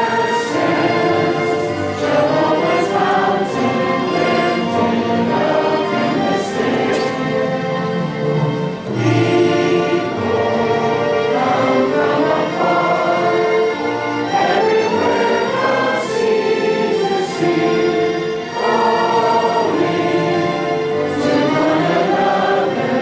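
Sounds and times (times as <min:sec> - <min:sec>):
congregation singing a hymn: 0:00.0 - 0:23.0
orchestral accompaniment: 0:00.0 - 0:23.0.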